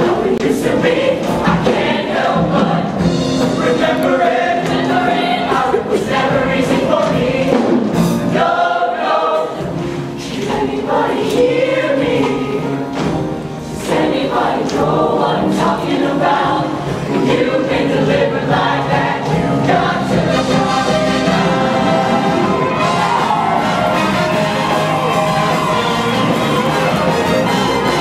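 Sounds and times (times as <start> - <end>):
choir singing: 0.0 - 12.9, 13.6 - 28.0
live band accompaniment: 0.0 - 17.6, 18.6 - 28.0.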